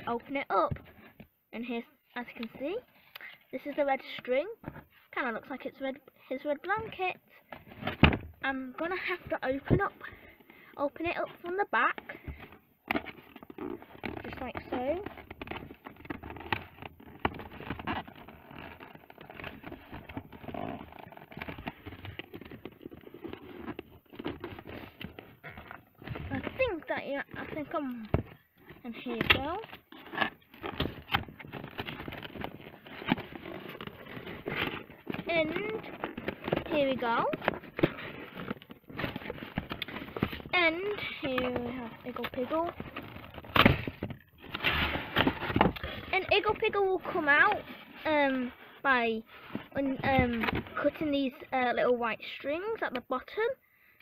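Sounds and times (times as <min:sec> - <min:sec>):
cardboard scraping and crackling: 0:06.4 - 0:53.1.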